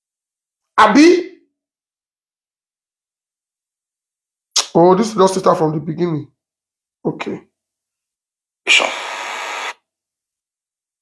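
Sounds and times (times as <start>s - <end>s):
static hiss: 8.7s - 9.8s.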